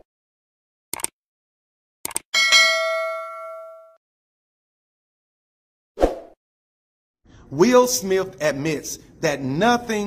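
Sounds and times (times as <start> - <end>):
notification bell ding: 2.4 - 4.0.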